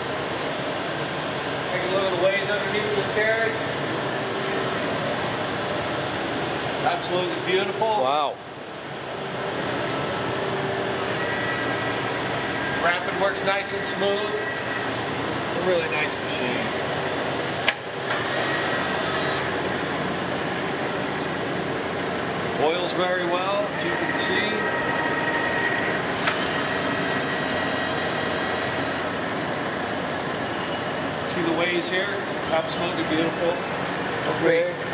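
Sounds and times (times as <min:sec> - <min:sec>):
faint steady whine: 0:00.0 - 0:34.9
lathe carriage whirring: 0:00.0 - 0:34.9
sharp click: 0:17.6 - 0:18.2.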